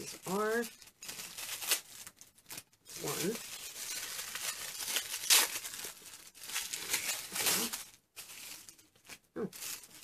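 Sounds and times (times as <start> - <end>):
tissue paper crinkling and rustling: 0.0 - 10.0.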